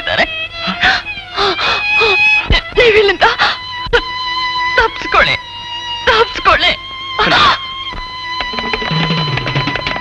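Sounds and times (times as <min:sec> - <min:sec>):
person crying in broken wails: 0:00.0 - 0:04.1, 0:07.2 - 0:07.7
melodramatic film score: 0:04.0 - 0:10.0.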